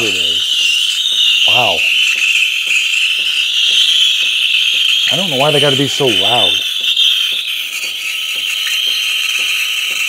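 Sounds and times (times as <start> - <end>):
steam wand hissing: 0.0 - 10.0.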